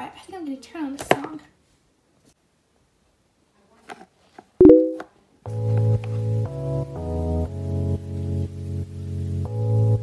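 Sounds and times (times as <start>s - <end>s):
toy button clicks: 4.6s - 5.0s
keyboard music with bass: 4.6s - 8.4s.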